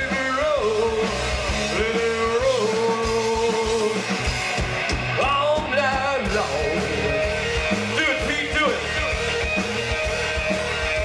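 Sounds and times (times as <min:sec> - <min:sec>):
bass and drums: 0:00.0 - 0:11.0
electric guitar bending long notes: 0:00.0 - 0:11.0.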